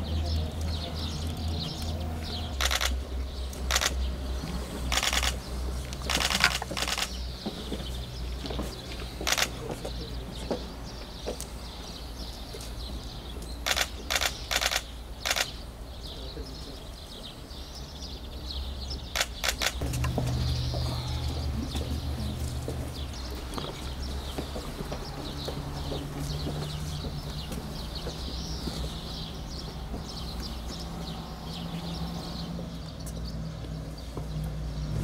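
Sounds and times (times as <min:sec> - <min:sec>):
birds chirping: 0:00.0 - 0:35.0
camera shutters clicking: 0:02.6 - 0:03.0, 0:03.7 - 0:04.0, 0:04.9 - 0:05.4, 0:06.0 - 0:07.2, 0:09.3 - 0:09.6, 0:13.7 - 0:15.6, 0:19.2 - 0:19.8.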